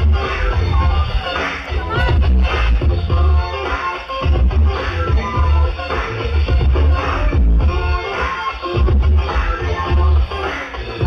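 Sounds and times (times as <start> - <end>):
electronic dance music: 0.0 - 11.0.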